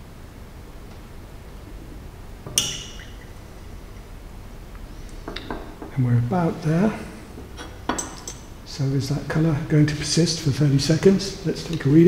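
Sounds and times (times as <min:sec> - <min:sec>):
glass flask clinking: 0:02.5 - 0:03.3.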